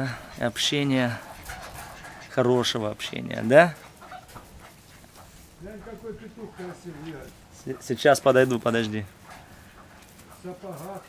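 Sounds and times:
man speaking: 0:00.0 - 0:01.3, 0:02.3 - 0:03.8, 0:05.6 - 0:09.2, 0:10.4 - 0:11.0.

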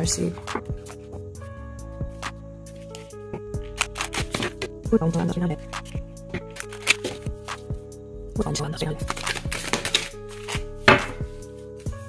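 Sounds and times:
background music: 0:00.0 - 0:12.0
cards slapping while shuffled: 0:03.6 - 0:04.8, 0:05.8 - 0:07.7, 0:09.0 - 0:12.0.

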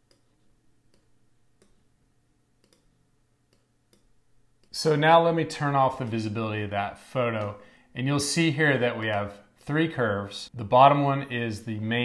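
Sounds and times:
computer mouse clicks: 0:00.0 - 0:01.8, 0:02.6 - 0:04.8.

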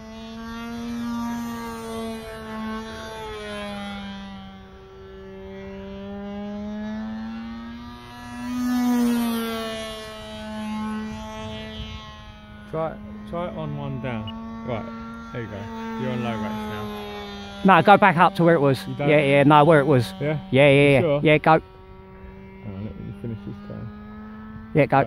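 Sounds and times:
model airplane engine buzzing: 0:00.0 - 0:25.0.

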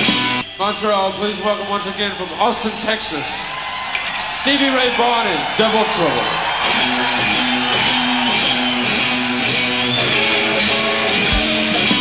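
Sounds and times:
electric guitar riff: 0:06.4 - 0:12.0
blues-rock band playing: 0:06.5 - 0:12.0.

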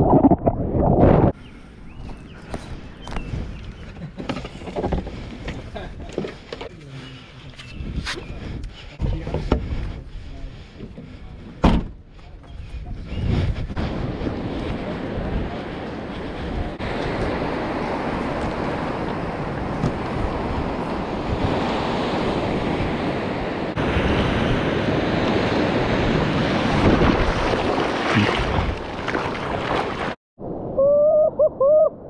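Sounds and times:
wind rumbling on microphone: 0:00.0 - 0:06.2, 0:07.5 - 0:32.0
waves breaking on beach: 0:14.3 - 0:30.2.

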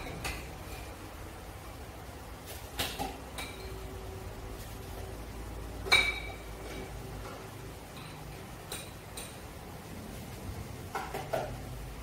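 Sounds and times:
kitchenware clattering: 0:02.7 - 0:04.0, 0:05.8 - 0:09.6, 0:10.9 - 0:11.7.

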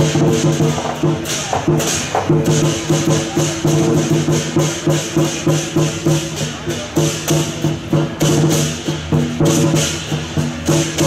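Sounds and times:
fast percussion beat: 0:00.0 - 0:11.0.

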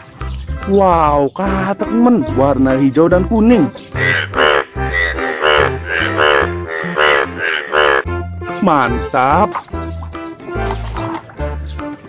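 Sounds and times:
background music: 0:00.0 - 0:12.0
frog croaking: 0:03.9 - 0:08.1.

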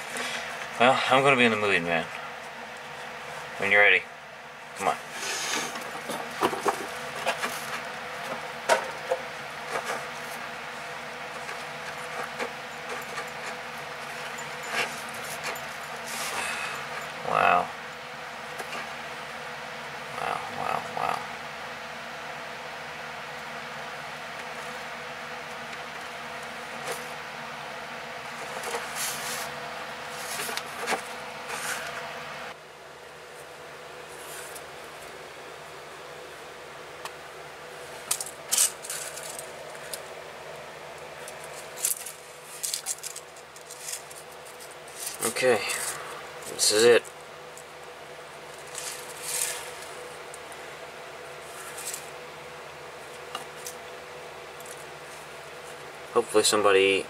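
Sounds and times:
steady hiss: 0:04.8 - 0:06.0.

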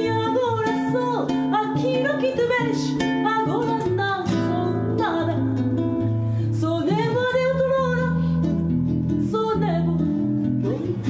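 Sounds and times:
classical guitar picking: 0:00.0 - 0:11.0
woman singing: 0:00.0 - 0:11.0.

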